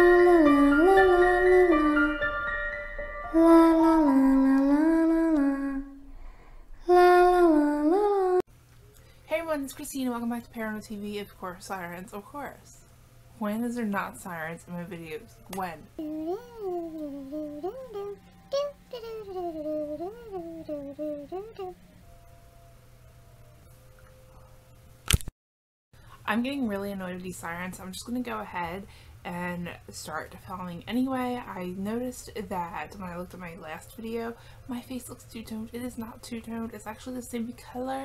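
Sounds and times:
woman singing wordless tune: 0:00.0 - 0:06.1, 0:06.8 - 0:08.5, 0:13.4 - 0:22.0.

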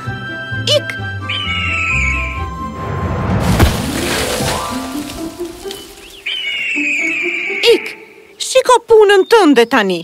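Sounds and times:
cartoon eagle call: 0:01.1 - 0:03.0.

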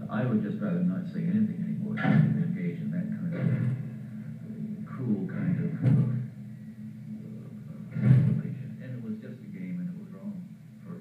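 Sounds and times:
man speaking: 0:00.0 - 0:03.8, 0:04.4 - 0:06.3, 0:07.2 - 0:11.0
low droning background music: 0:00.0 - 0:11.0.

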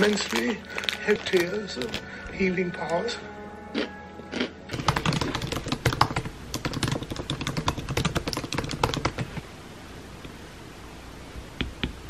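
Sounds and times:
rapid light clicks and taps: 0:04.8 - 0:09.4.

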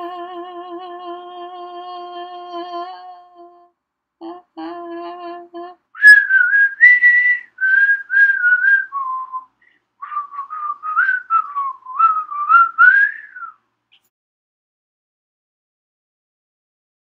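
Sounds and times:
person whistling a tune: 0:06.0 - 0:13.6.

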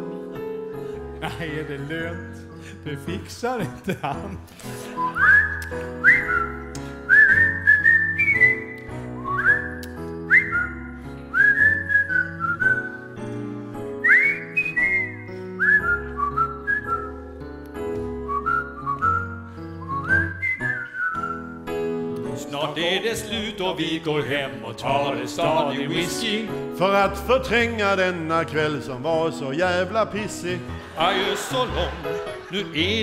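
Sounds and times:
piano accompaniment: 0:00.0 - 0:33.0
whistled tune: 0:04.8 - 0:21.9.

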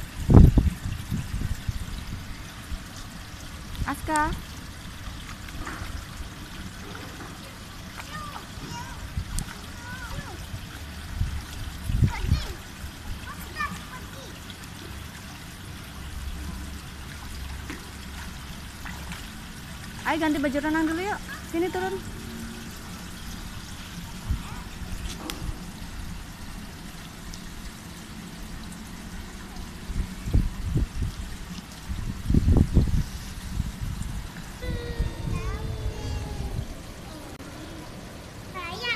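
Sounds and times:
pool water lapping at edge: 0:00.0 - 0:38.9.

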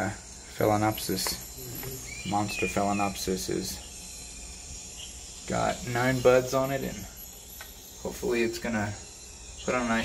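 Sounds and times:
high-pitched insect chorus: 0:00.0 - 0:10.0.

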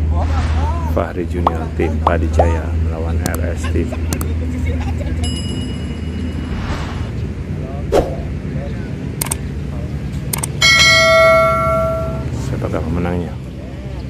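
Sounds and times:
notification bell ding: 0:10.6 - 0:12.3
thin high tone: 0:10.6 - 0:12.4.

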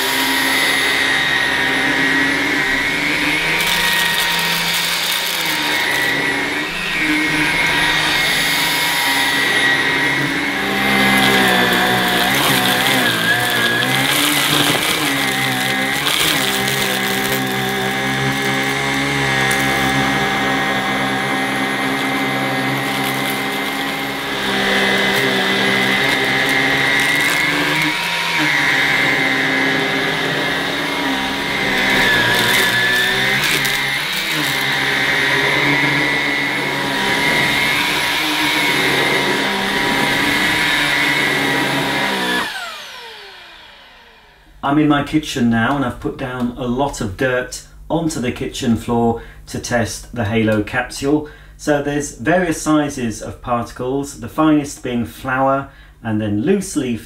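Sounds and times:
vacuum head pushed over carpet: 0:00.0 - 0:44.4
vacuum cleaner motor whine: 0:00.0 - 0:45.0.

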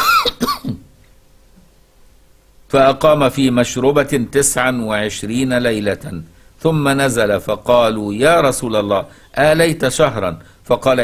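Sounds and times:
man clearing his throat: 0:00.0 - 0:00.9.

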